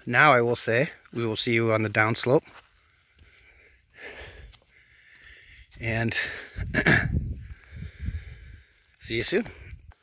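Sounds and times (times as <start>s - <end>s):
soft breath: 2.6s - 6.6s, 7.4s - 8.9s
wind rumble on microphone: 6.4s - 10.0s.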